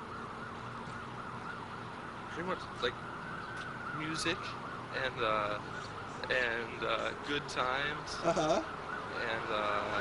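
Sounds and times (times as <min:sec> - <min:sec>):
emergency vehicle siren: 0:00.0 - 0:10.0.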